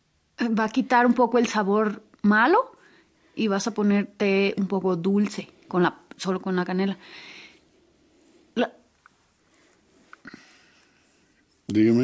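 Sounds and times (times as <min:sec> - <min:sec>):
faint breathy hiss: 0:02.6 - 0:03.6, 0:06.9 - 0:12.0.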